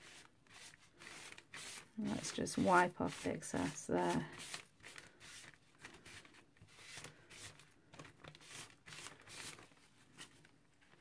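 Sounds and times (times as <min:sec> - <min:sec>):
tissue rubbing on card: 0:00.0 - 0:10.4.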